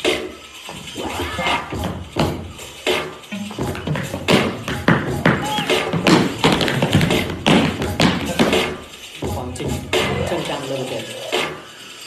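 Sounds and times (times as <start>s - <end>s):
tap shoes on hard floor: 3.6s - 8.6s.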